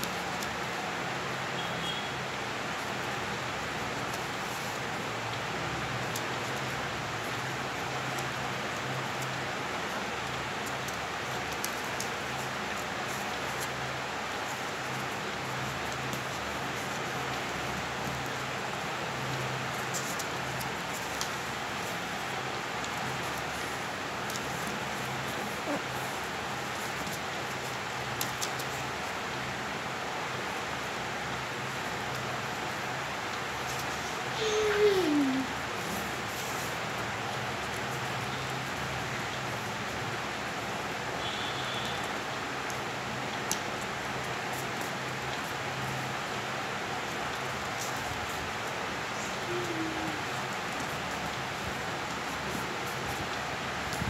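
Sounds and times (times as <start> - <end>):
background hiss: 0.0 - 54.0.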